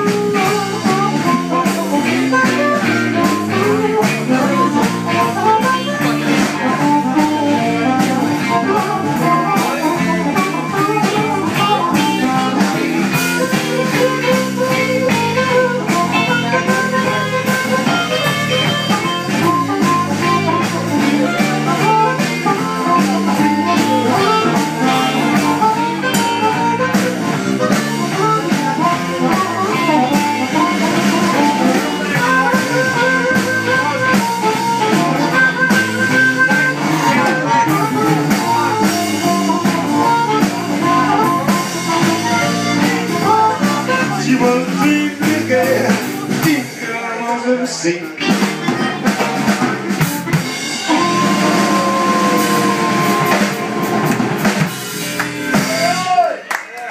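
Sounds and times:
amplified harmonica: 0.0 - 56.2
electric bass: 0.0 - 56.3
drums: 0.0 - 56.9.

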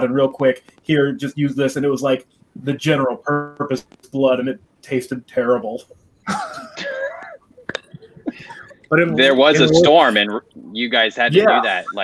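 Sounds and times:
person laughing: 6.3 - 9.7, 11.3 - 12.0.

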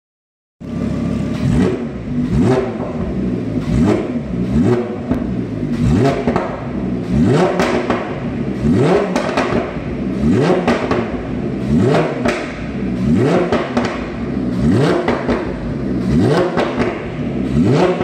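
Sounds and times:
car engine revving: 0.6 - 18.0
exhaust crackles and pops: 1.3 - 18.0.

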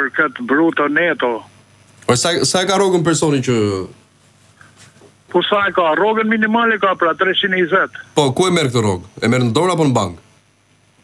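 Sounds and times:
person speaking over telephone: 0.0 - 1.5, 5.3 - 9.8.

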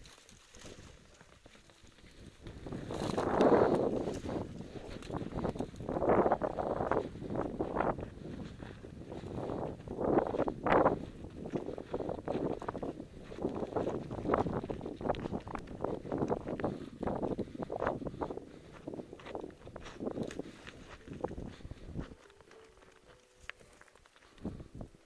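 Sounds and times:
footsteps on loose rock and gravel: 0.0 - 25.0
wind buffeting microphone: 1.9 - 22.2, 24.3 - 25.0.

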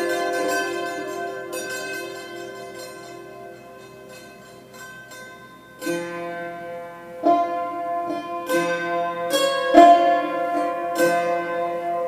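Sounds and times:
hammered dulcimer ringing: 0.0 - 12.0.

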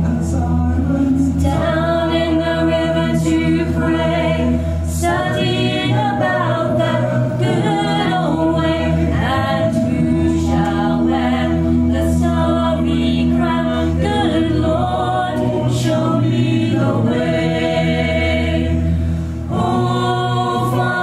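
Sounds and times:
women singing a hymn a cappella: 0.0 - 21.0.

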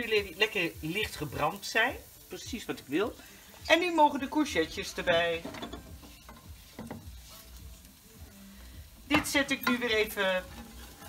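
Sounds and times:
faint frying sizzle: 0.0 - 11.0.

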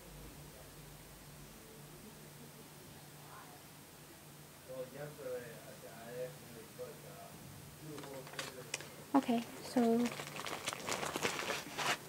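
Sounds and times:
plastic packaging crinkling: 9.6 - 12.0.

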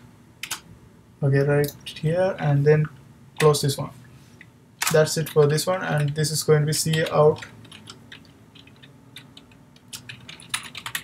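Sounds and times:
typing on computer keyboard: 6.9 - 11.0.

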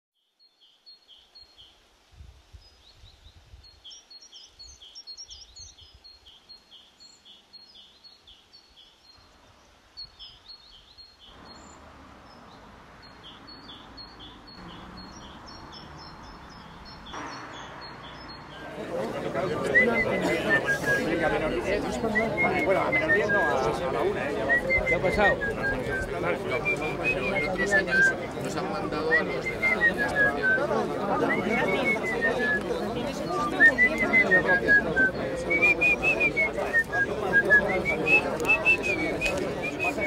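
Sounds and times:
small birds chirping: 0.2 - 1.9, 2.5 - 40.0
steady background noise: 11.4 - 40.0.

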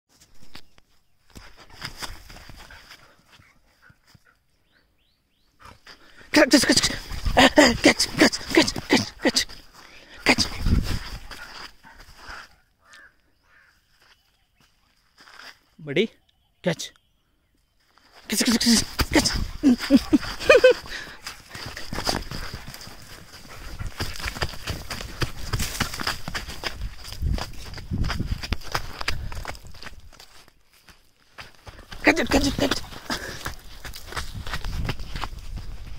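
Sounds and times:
running footsteps on sandy ground: 0.1 - 4.6, 5.3 - 15.7, 17.8 - 35.9
dog paws scuffing sand: 18.2 - 30.3.

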